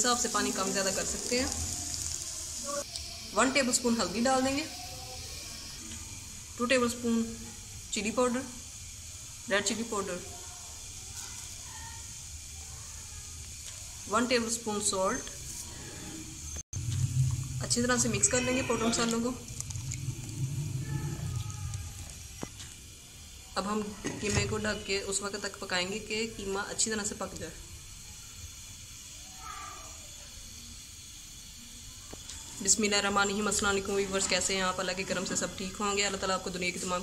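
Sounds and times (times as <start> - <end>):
faint steady hiss: 0.0 - 15.6
meat simmering and bubbling: 0.0 - 29.2
low hum: 15.8 - 22.5.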